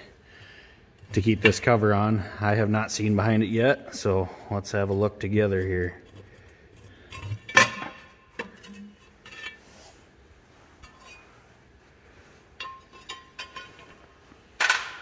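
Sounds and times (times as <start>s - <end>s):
metal parts clinking and knocking: 12.6s - 14.0s.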